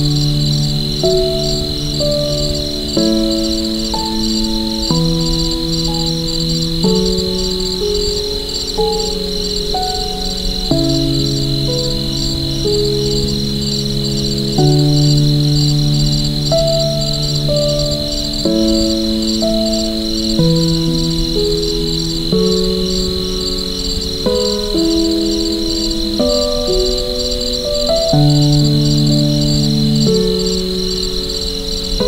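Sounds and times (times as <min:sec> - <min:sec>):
crickets chirping: 0:00.0 - 0:32.0
soft piano chords: 0:00.0 - 0:32.0.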